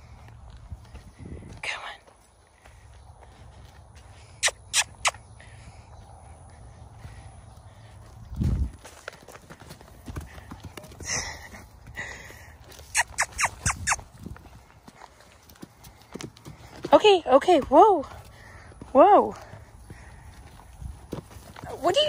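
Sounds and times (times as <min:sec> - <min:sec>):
soft hoof steps on sand: 0:00.0 - 0:04.4
short high calls: 0:12.9 - 0:14.0.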